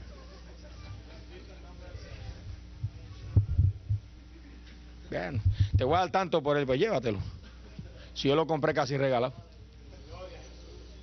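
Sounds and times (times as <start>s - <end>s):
low electrical hum: 0.0s - 11.0s
dull low thumps: 2.8s - 4.2s, 5.4s - 6.0s.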